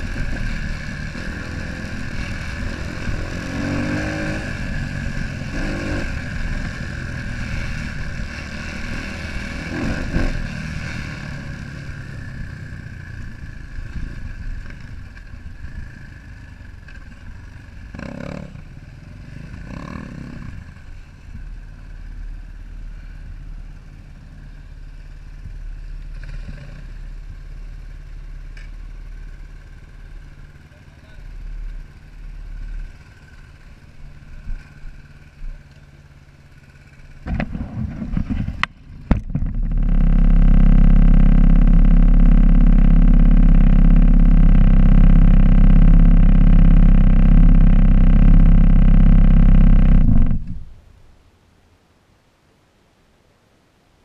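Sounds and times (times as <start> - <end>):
dirt bike engines running: 0.0 - 50.7
steady engine drone: 0.0 - 50.9.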